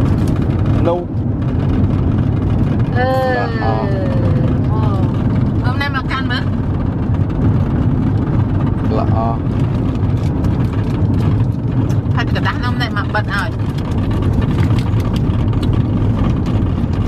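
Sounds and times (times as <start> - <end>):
car cabin low rumble: 0.0 - 17.0
voices: 3.0 - 6.4.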